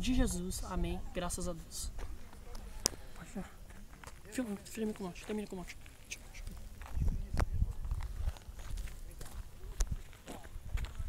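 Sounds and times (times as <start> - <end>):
wind buffeting microphone: 6.4 - 11.0.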